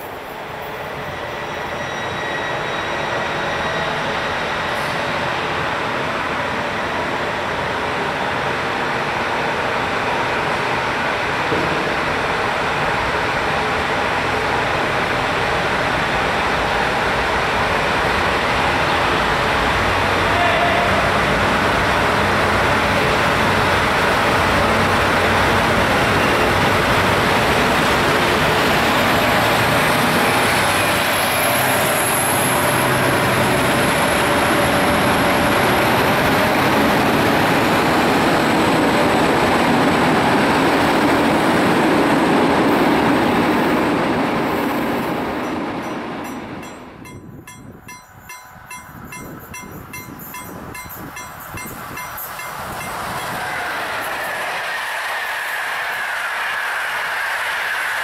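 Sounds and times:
passenger train rumbling: 0.0s - 58.0s
thin high squeal: 1.1s - 3.9s.

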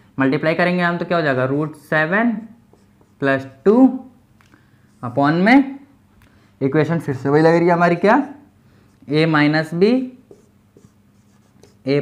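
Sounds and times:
marker scratching on whiteboard: 2.4s - 3.6s, 10.1s - 12.0s
man talking: 6.6s - 8.4s.

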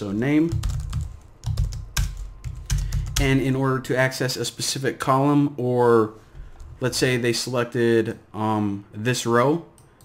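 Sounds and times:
keyboard typing: 0.5s - 3.4s.

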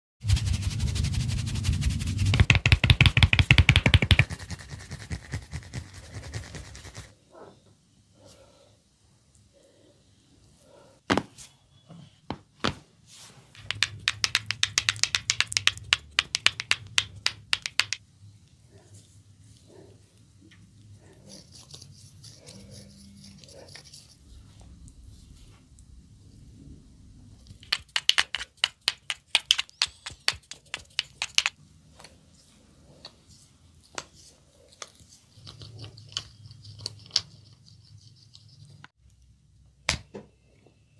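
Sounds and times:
hands rubbing scalp and hair: 0.2s - 7.1s, 13.1s - 18.0s, 27.5s - 31.6s.

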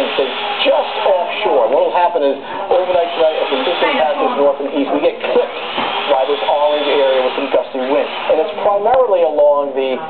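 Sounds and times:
man talking on television: 0.0s - 10.0s.

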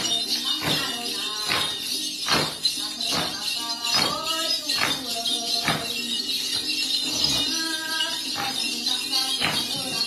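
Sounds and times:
bell rattle jingling: 0.0s - 10.0s.

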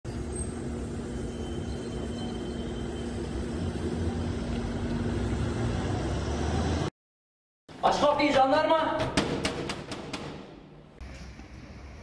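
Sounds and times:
vehicle engines rumbling: 0.1s - 6.9s.

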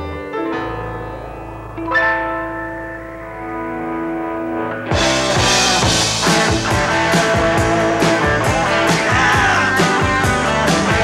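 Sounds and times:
keyboard chord ringing: 0.0s - 7.9s.

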